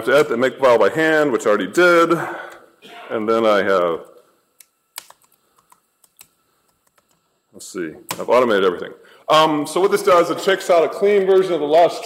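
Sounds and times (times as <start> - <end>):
keyboard keystrokes: 5.0 - 7.2.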